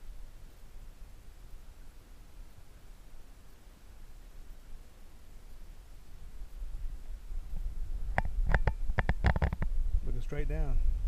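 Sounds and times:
wind rumbling on microphone: 6.3 - 11.0
camera handling clicks and knocks: 8.2 - 9.7.

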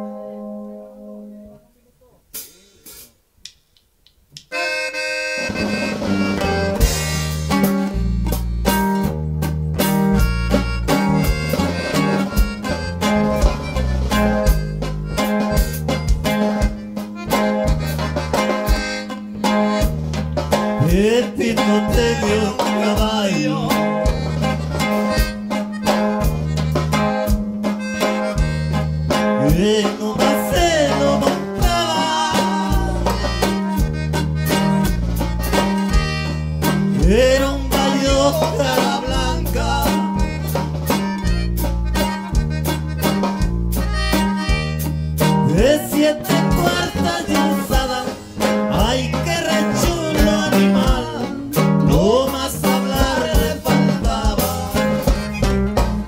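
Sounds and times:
plucked guitar notes: 0.0 - 1.8, 4.4 - 56.0
accordion band playing live: 4.4 - 56.0
accordion chord: 4.5 - 56.0.

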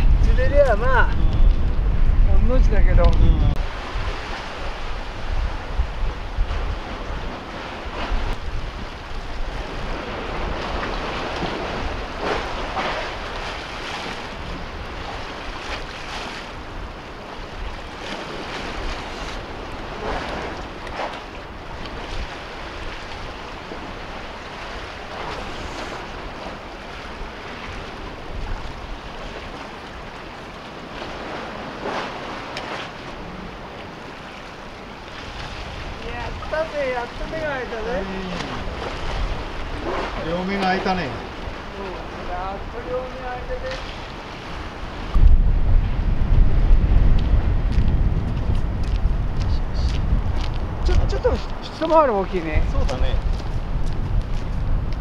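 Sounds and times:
wind rumbling on microphone: 0.0 - 55.0
waves splashing against concrete: 2.3 - 45.6, 46.6 - 55.0.

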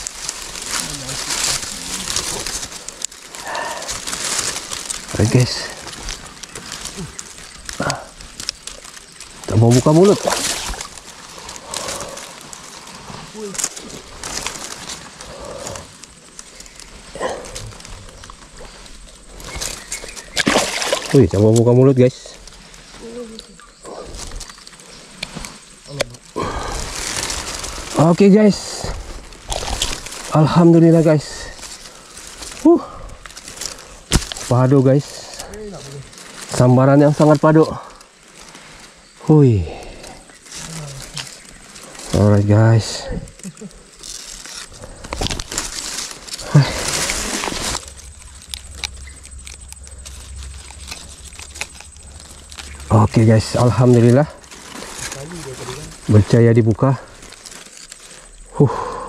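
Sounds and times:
water splashing: 0.0 - 15.7, 19.3 - 21.6
dry grass and reeds rustling: 0.0 - 59.0.

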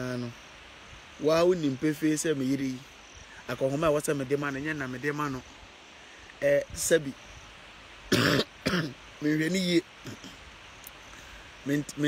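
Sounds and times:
man coughing: 8.1 - 8.9.

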